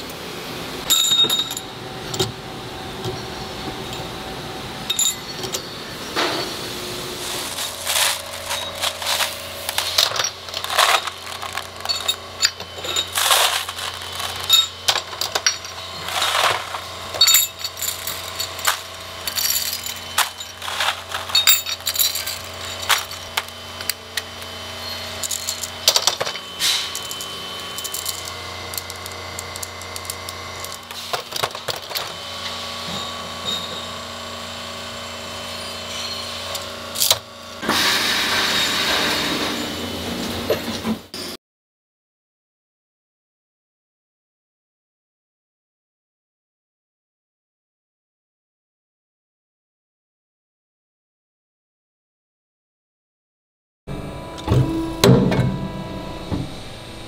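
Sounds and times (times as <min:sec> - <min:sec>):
low machine hum: 0:00.0 - 0:37.6, 0:53.9 - 0:57.0
loud machine noise: 0:00.0 - 0:41.1, 0:53.9 - 0:57.0
metal balls clinking: 0:00.9 - 0:01.8, 0:04.9 - 0:05.8, 0:07.3 - 0:24.0, 0:24.8 - 0:32.0.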